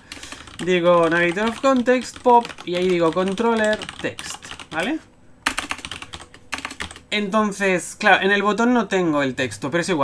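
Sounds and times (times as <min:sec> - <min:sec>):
typing on computer keyboard: 0:00.0 - 0:07.1.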